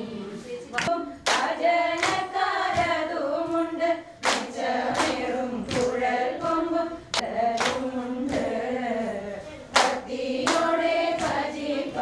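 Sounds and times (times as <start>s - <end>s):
women singing in unison: 0.0s - 12.0s
hand claps: 0.8s - 3.0s, 4.2s - 6.0s, 7.1s - 8.5s, 9.7s - 11.5s.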